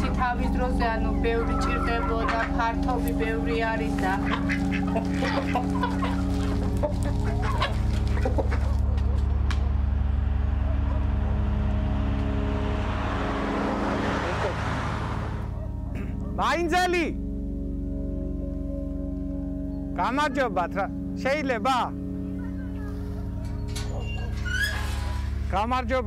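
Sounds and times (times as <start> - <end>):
low drone: 0.0 - 26.0
chickens clucking: 1.7 - 9.6.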